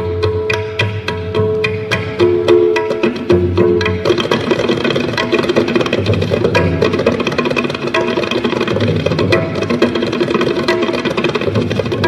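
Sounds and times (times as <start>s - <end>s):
tabla drums playing fast: 0.0s - 12.0s.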